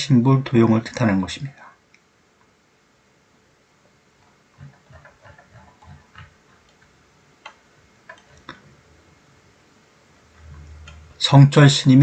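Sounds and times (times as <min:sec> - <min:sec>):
mouse scroll wheel ticking: 0:04.2 - 0:08.6.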